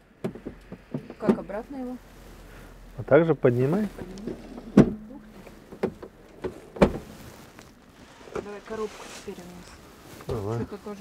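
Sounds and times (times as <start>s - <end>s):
plastic sheeting rustling: 1.5s - 11.0s.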